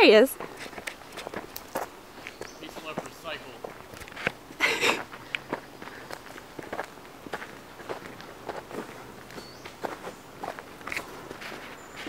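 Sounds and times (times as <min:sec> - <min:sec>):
footsteps crunching through dry leaves: 0:00.4 - 0:12.0.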